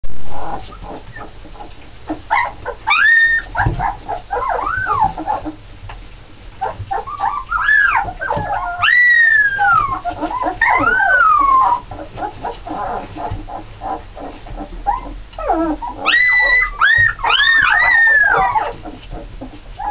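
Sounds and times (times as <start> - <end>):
puppies whining and squealing: 0.3 - 5.6, 6.6 - 19.9.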